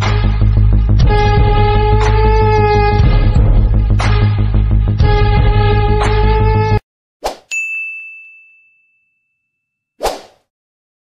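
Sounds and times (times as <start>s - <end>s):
intro music: 0.0s - 6.8s
bright ding: 7.5s - 9.6s.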